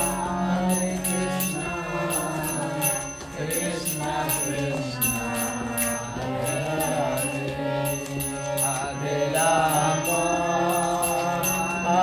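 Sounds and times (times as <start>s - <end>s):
chanted devotional melody: 0.0s - 12.0s
harmonium chords: 0.0s - 12.0s
small hand cymbals ringing: 0.0s - 12.0s.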